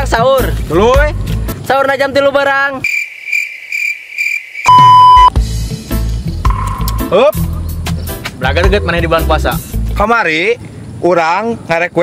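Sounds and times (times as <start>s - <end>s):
cricket chirping: 2.8s - 5.3s
loud steady beep: 4.6s - 5.4s
music with low beat: 4.8s - 9.3s.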